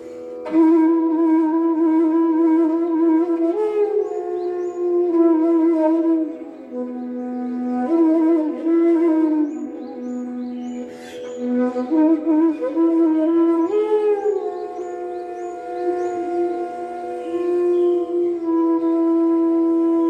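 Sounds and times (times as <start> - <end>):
bamboo flute playing: 0.0 - 20.0.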